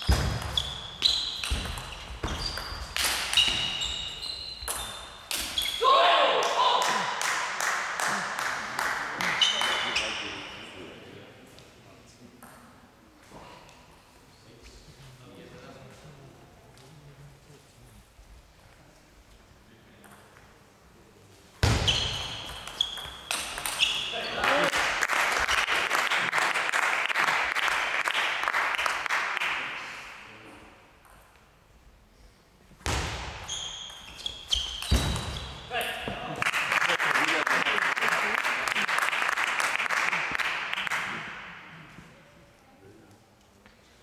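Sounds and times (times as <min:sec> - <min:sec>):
person shouting: 0:05.8 - 0:07.1
ping-pong ball hits: 0:22.4 - 0:23.8
spectators applauding: 0:24.4 - 0:29.7, 0:36.4 - 0:41.2.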